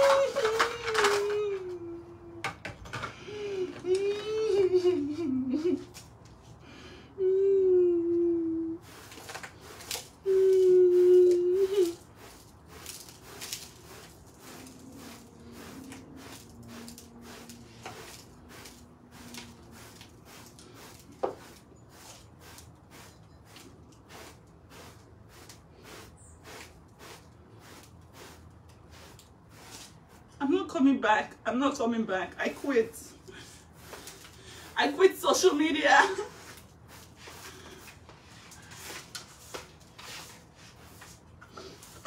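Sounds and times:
woman humming: 0.0s - 2.5s, 3.3s - 5.9s, 7.2s - 8.8s, 10.2s - 12.0s
brush sweeping into plastic dustpan: 11.0s - 30.3s, 33.8s - 42.0s.

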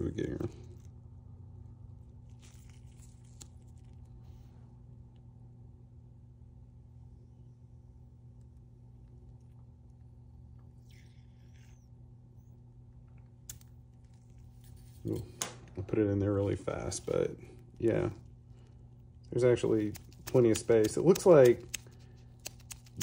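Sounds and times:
fan motor hum: 0.0s - 23.0s
glass vial crackles and clicks: 13.0s - 14.5s, 17.6s - 23.0s.

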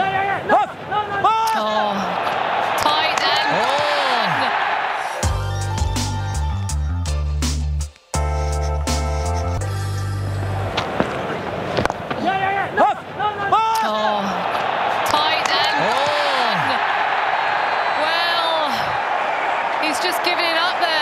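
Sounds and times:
players shouting: 0.0s - 5.3s, 10.4s - 21.0s
crowd roar: 0.0s - 5.8s, 10.4s - 21.0s.

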